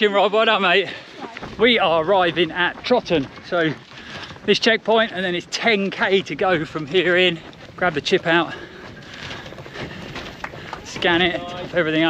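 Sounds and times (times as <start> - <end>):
footsteps on pavement: 0.0 - 12.0.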